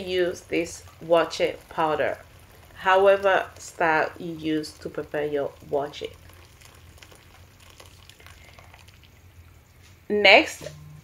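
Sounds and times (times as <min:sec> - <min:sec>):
boiling water pouring and bubbling: 0:00.0 - 0:10.0.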